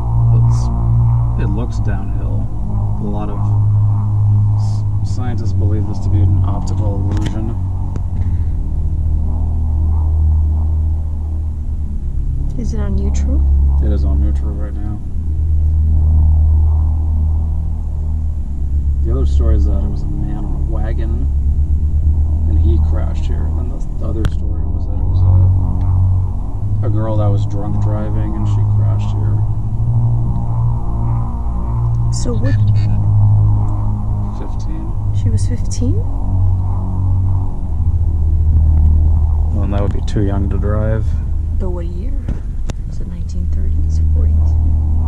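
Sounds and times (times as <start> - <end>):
car engine idling rumble: 0.0 - 45.0.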